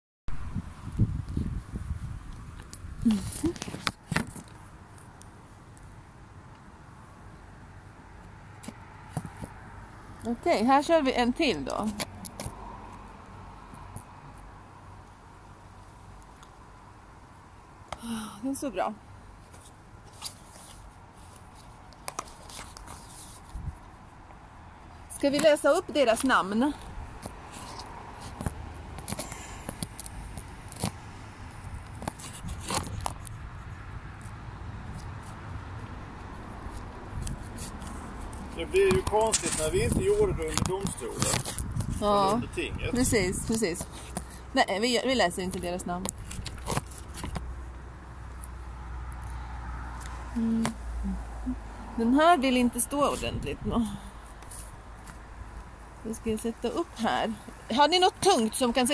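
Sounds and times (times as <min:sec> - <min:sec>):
fingers handling phone: 0:19.5 - 0:23.6.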